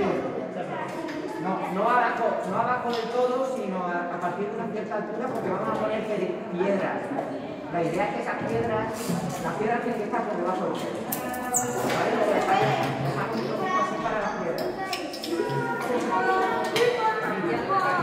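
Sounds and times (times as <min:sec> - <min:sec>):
children talking: 0:00.0 - 0:02.9, 0:10.8 - 0:18.0.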